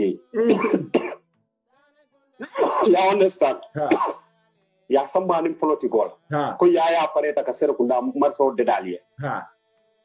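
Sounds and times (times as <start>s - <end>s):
faint background music: 0.0s - 1.2s, 2.0s - 9.6s.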